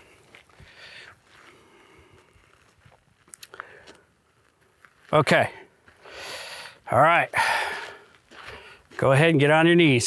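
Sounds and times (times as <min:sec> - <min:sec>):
boot footsteps on dirt: 0:00.0 - 0:10.0.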